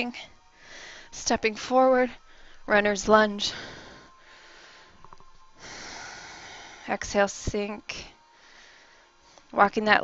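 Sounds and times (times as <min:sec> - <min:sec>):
person breathing close to microphone: 0:00.2 - 0:01.2, 0:02.2 - 0:02.7, 0:03.4 - 0:07.0, 0:08.3 - 0:09.5.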